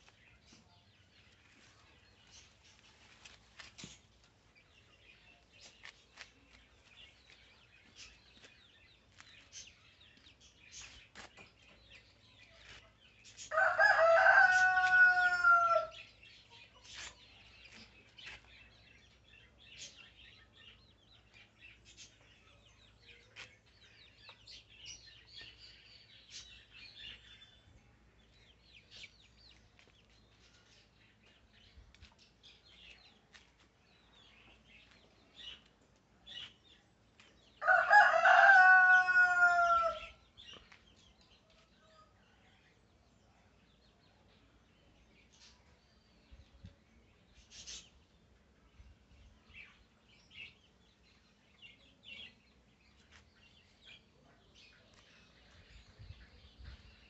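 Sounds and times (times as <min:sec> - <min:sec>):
rooster crowing: 0:13.5 - 0:16.0, 0:37.6 - 0:40.1.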